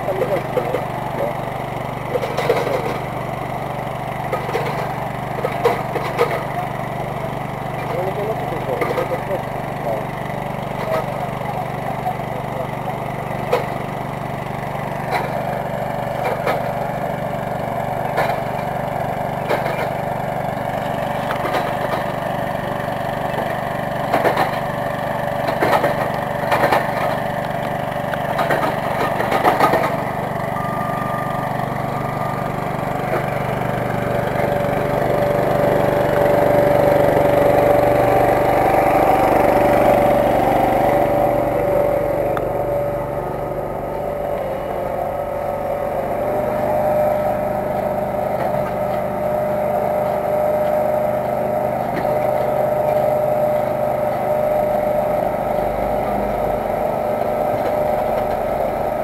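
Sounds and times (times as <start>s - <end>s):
engine running: 0.0s - 59.0s.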